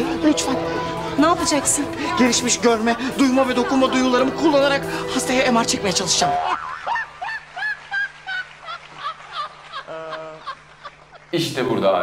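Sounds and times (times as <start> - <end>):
woman laughing hard: 6.4 - 11.3.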